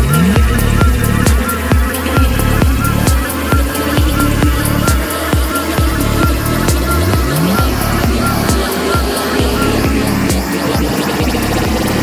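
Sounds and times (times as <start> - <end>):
electronic dance music: 0.0 - 12.0
rising synth sweeps: 0.0 - 12.0.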